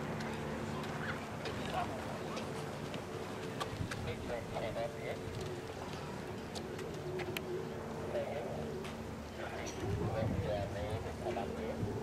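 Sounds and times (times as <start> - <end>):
faint voices: 0.0 - 12.0
bird cooing: 0.6 - 12.0.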